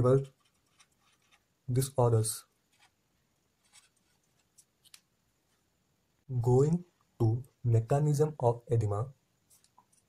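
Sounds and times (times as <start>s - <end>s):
pen scratching on paper: 0.0s - 1.5s, 3.6s - 4.6s.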